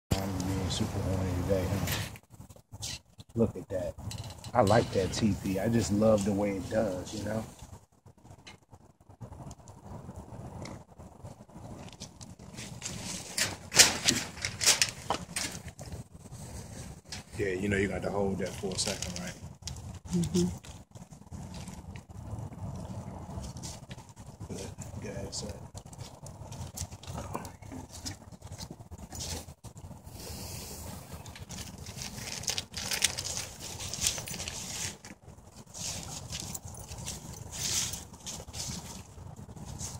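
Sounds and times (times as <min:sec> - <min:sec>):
sharp popping of fire: 0:00.1 - 0:35.4
wood fire crackling: 0:00.1 - 0:39.9.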